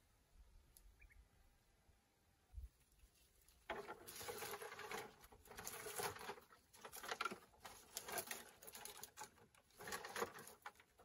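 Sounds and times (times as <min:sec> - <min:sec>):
scraping and rustling: 0:02.8 - 0:11.0
rummaging among charred sticks: 0:03.0 - 0:11.0.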